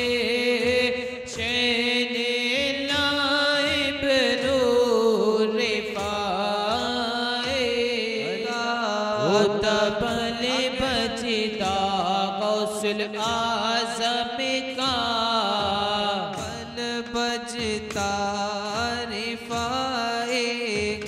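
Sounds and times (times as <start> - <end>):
frame drums beating: 0.0 - 4.9, 5.6 - 21.0.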